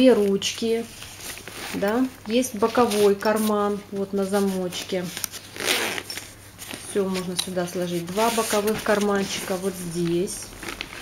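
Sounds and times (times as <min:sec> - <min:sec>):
fabric handling: 0:00.1 - 0:11.0
zipper being pulled: 0:05.4 - 0:06.2.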